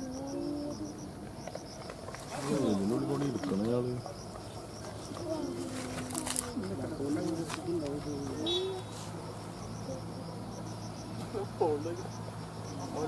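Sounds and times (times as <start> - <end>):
insects chirping: 0.0 - 13.0.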